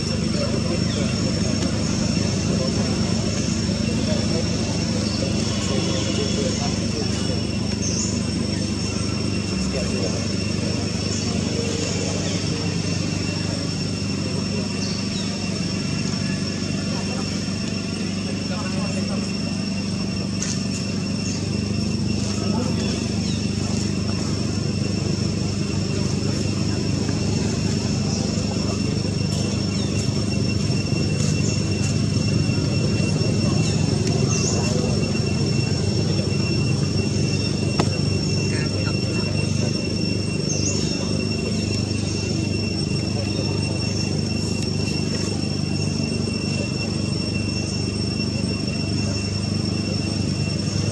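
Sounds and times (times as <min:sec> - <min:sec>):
high-pitched whines: 0:00.0 - 0:50.9
low engine hum: 0:00.0 - 0:50.9
voices talking: 0:00.0 - 0:50.9.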